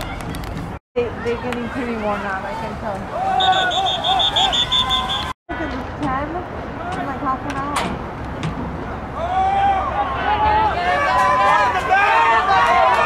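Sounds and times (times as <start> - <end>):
spectators shouting: 3.0 - 5.6, 9.2 - 13.0
referee's whistle trill: 3.4 - 5.3.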